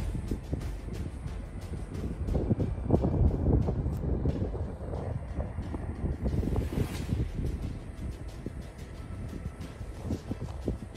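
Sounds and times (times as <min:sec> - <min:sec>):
wind buffeting microphone: 0:00.0 - 0:10.9.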